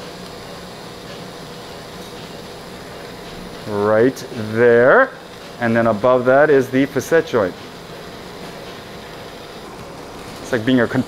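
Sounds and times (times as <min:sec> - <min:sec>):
ventilation hiss: 0:00.0 - 0:11.0.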